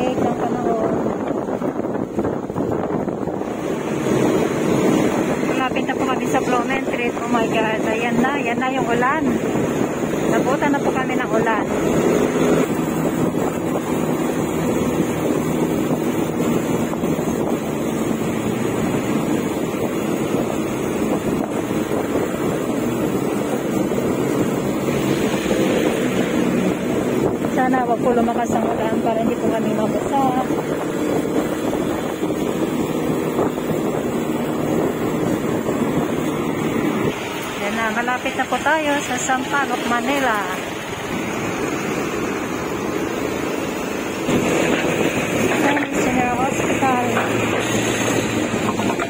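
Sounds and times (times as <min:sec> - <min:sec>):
voices: 0:00.0 - 0:01.3, 0:05.4 - 0:09.5, 0:10.2 - 0:11.8, 0:27.4 - 0:30.7, 0:37.4 - 0:41.2, 0:45.4 - 0:47.7
vehicle road and engine noise: 0:00.0 - 0:49.0
wind buffeting microphone: 0:00.0 - 0:49.0.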